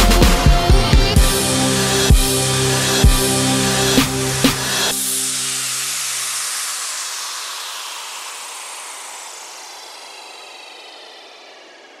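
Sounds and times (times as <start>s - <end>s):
low sustained music notes: 0.0s - 12.0s
hissing whoosh: 1.8s - 12.0s.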